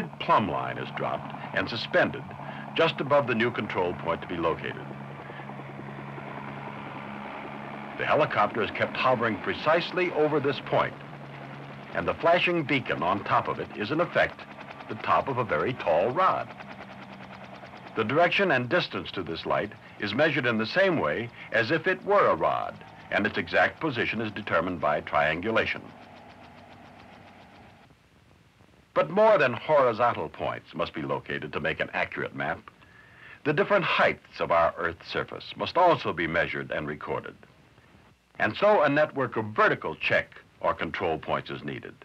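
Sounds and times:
helicopter engine drone: 0:00.0 - 0:27.9, 0:29.0 - 0:37.3.

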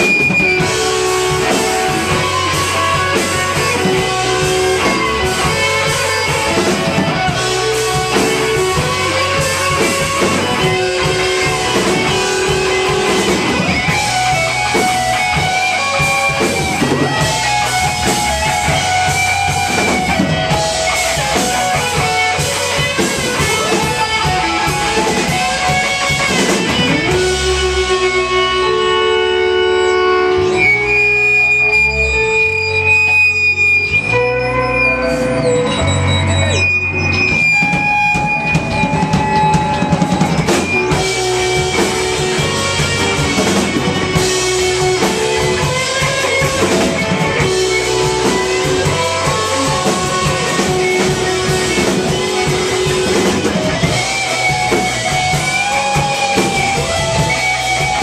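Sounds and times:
live rock band playing: 0:00.0 - 0:58.0.

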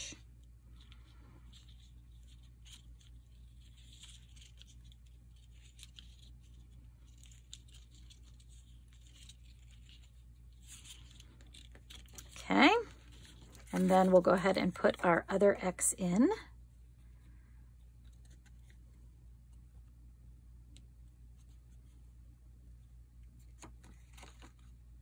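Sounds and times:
paper and thread rustling: 0:00.0 - 0:19.9, 0:21.3 - 0:22.1, 0:23.2 - 0:25.0.

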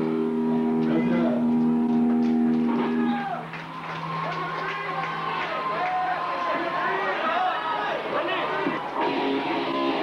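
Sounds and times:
electric guitar note ringing: 0:00.0 - 0:03.4
crowd chatter and shouts: 0:02.4 - 0:10.0.

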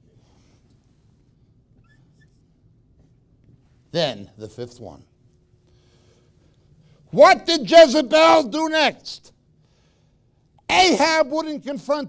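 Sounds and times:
marker squeaking on whiteboard: 0:01.8 - 0:02.5.

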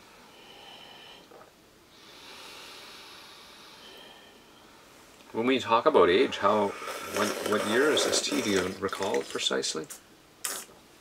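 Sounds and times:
breathy hiss of air drawn in: 0:01.9 - 0:05.1, 0:06.2 - 0:08.6.

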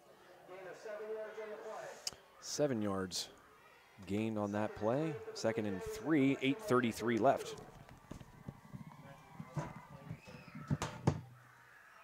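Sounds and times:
distant voices: 0:03.2 - 0:11.6
sharp knocks: 0:09.4 - 0:11.4.

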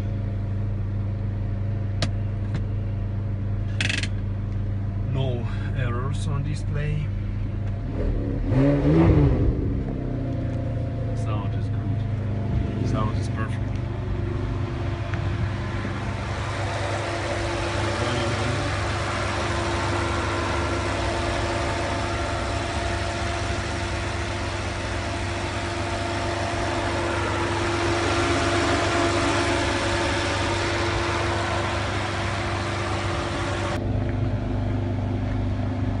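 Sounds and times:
car engine idling: 0:00.0 - 0:08.5, 0:09.4 - 0:36.0.

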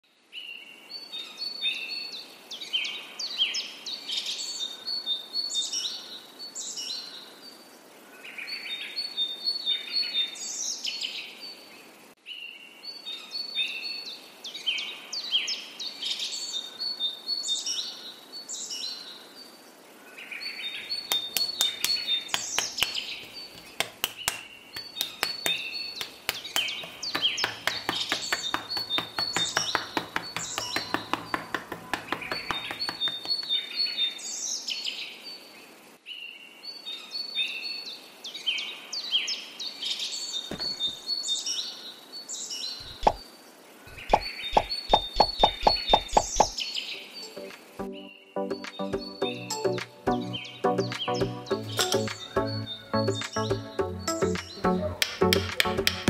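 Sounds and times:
songbirds chirping and singing: 0:20.1 - 0:35.5, 0:43.8 - 0:56.0
sharp clicks: 0:21.1 - 0:33.6.

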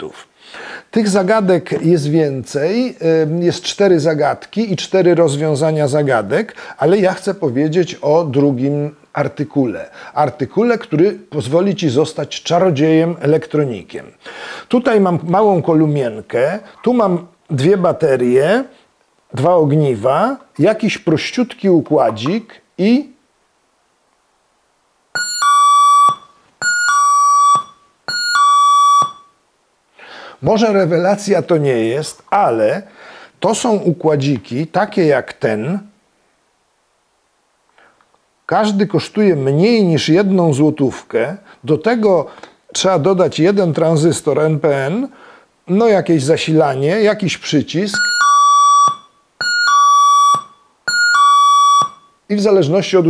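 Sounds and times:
electronic ding-dong chime: 0:25.2 - 0:29.3, 0:48.0 - 0:52.2.

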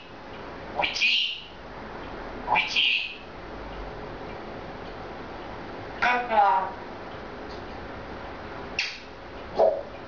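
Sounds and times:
pet animal squeaking calls: 0:00.8 - 0:01.5, 0:02.5 - 0:03.2.

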